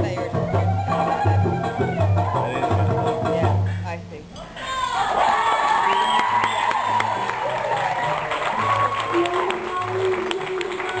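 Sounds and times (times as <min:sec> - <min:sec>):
audience clapping and cheering: 0:04.9 - 0:11.0.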